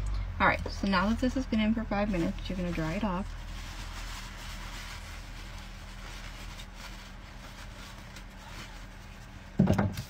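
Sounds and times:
background hum and hiss: 0:00.0 - 0:10.0
paper towel rustling: 0:01.0 - 0:09.6.

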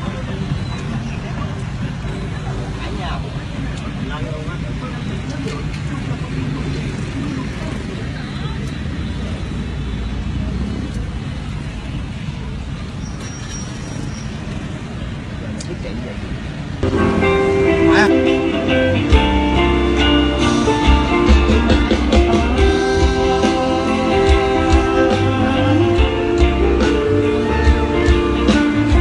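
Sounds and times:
street traffic: 0:00.0 - 0:29.0.

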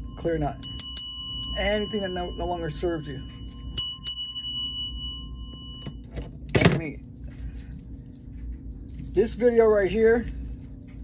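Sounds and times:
brass hand bell ringing: 0:00.0 - 0:06.1.

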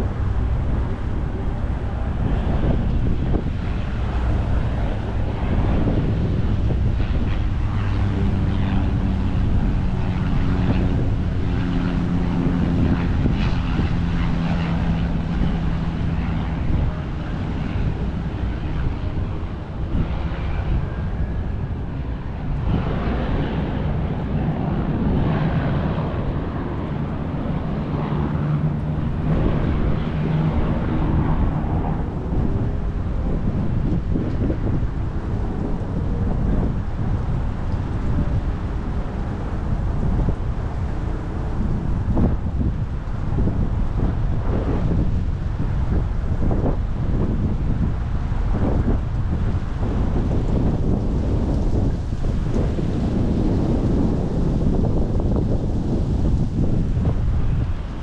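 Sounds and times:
distant engine drone: 0:00.0 - 0:58.0
wind buffeting microphone: 0:00.0 - 0:58.0.

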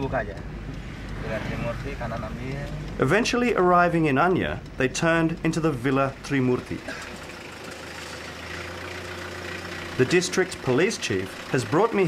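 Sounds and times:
engine idling: 0:00.0 - 0:12.0.

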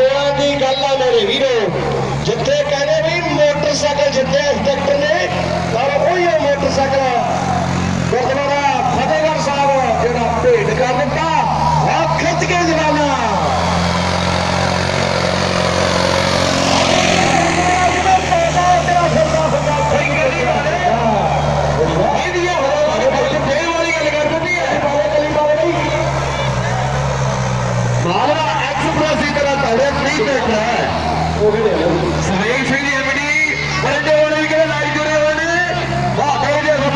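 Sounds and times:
announcer calling: 0:00.0 - 0:36.9
tractor diesel engine under load: 0:00.0 - 0:36.9
loud rushing swell: 0:03.9 - 0:32.8.

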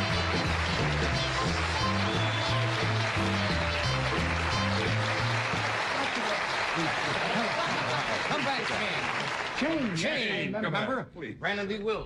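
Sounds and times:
studio audience applause: 0:00.0 - 0:10.4.

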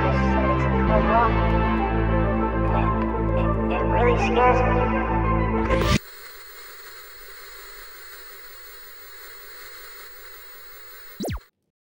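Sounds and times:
television static hiss: 0:05.8 - 0:11.4
television switching off zap: 0:05.8 - 0:11.4.

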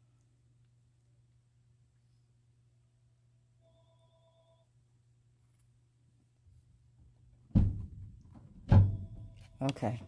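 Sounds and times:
dull thumps: 0:07.4 - 0:09.1.

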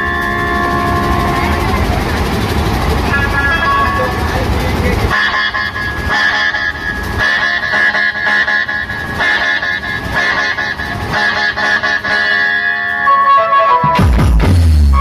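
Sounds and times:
horn-like lead melody: 0:00.0 - 0:01.9, 0:05.1 - 0:15.0
barrel drums beating: 0:13.8 - 0:14.9.

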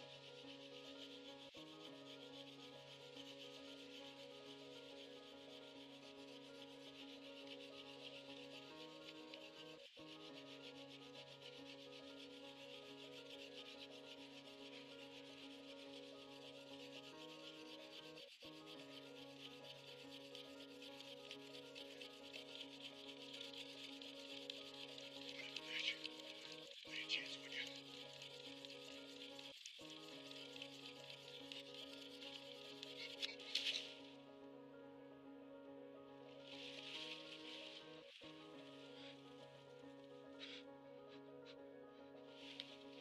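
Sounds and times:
ambient background music: 0:00.0 - 0:43.0
steady rasping hiss: 0:00.4 - 0:34.1.

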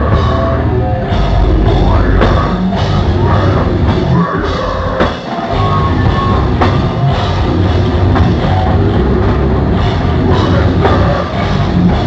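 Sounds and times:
metal band playing live: 0:00.0 - 0:12.0
pounding drum kit: 0:00.0 - 0:12.0.

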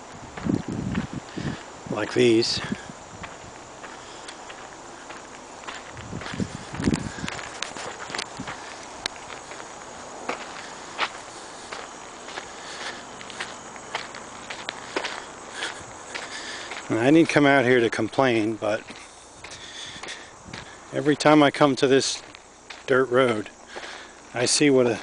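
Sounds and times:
footsteps on sandy dirt road: 0:00.0 - 0:25.0.

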